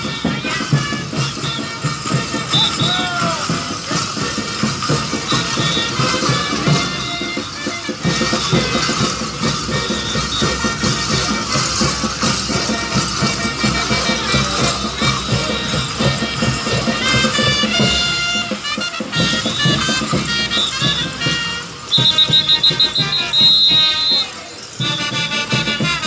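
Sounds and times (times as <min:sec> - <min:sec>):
band playing held melody notes: 0:00.0 - 0:26.0
steady drum beat: 0:00.0 - 0:26.0.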